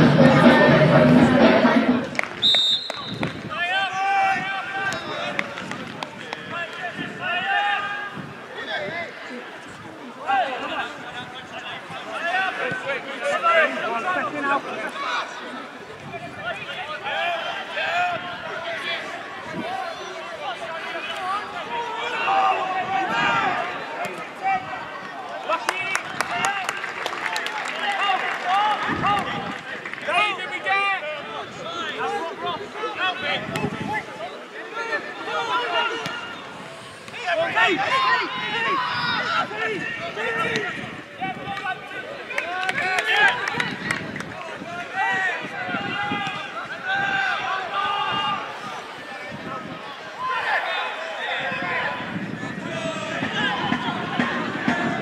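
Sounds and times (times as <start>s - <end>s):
referee's whistle blast: 2.4s - 3.4s.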